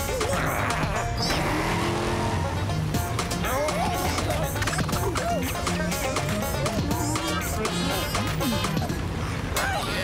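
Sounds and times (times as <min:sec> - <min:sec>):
cartoon truck engine pulling away: 0:00.0 - 0:05.1
background music: 0:00.0 - 0:10.0.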